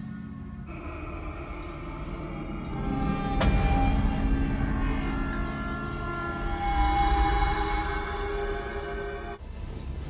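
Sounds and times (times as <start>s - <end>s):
sustained eerie tones: 0.0s - 10.0s.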